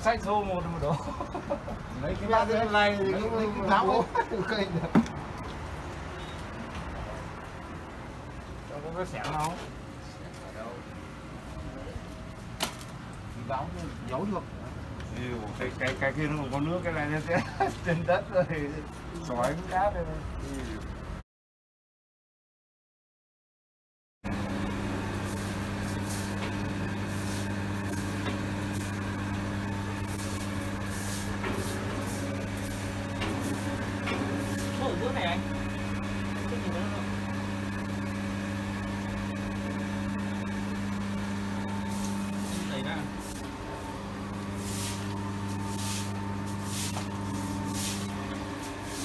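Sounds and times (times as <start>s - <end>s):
electric motor hum: 24.3s - 49.0s.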